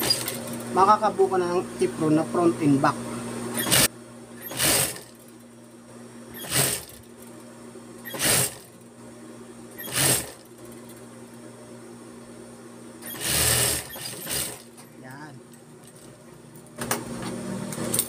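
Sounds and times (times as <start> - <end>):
sewing machine stitching: 0.0 - 0.6, 3.6 - 5.2, 6.4 - 7.0, 8.0 - 8.7, 9.8 - 10.4, 13.0 - 14.7.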